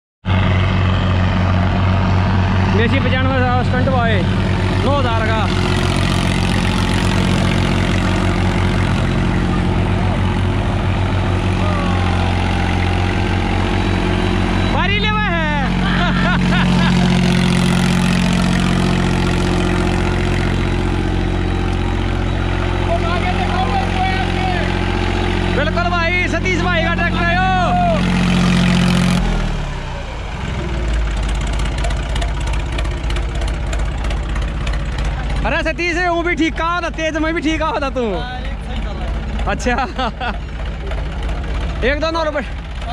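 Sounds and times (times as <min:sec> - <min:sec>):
tractor diesel engine chugging: 0:00.3 - 0:42.9.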